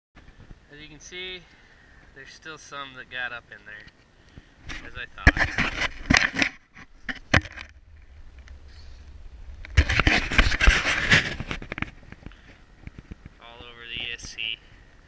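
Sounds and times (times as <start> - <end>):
handling clicks and scrapes: 4.6 - 14.5
fabric rustling and scraping: 4.7 - 7.8, 8.6 - 13.4.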